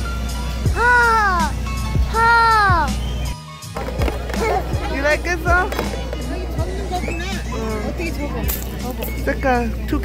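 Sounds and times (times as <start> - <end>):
music with steady drum beat: 0.7 - 9.6.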